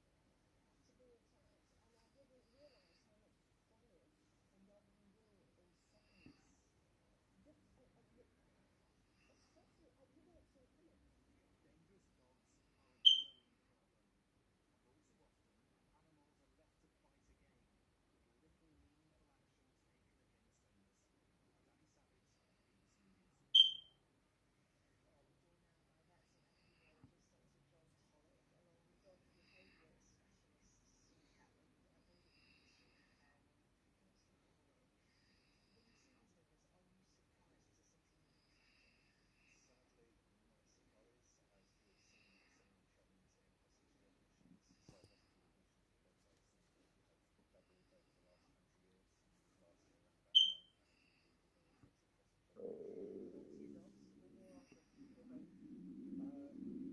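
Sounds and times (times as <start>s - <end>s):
short high electronic beep: 13.1s - 13.4s, 23.6s - 23.9s, 50.4s - 50.6s.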